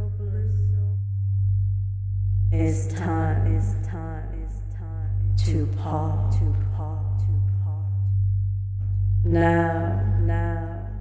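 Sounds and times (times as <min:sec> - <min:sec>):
low pulsing sine tone: 0:00.0 - 0:11.0.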